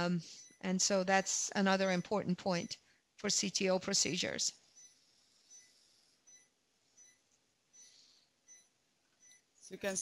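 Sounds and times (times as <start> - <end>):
patient monitor beeps: 0.0 - 0.8, 1.6 - 2.8, 4.7 - 9.5.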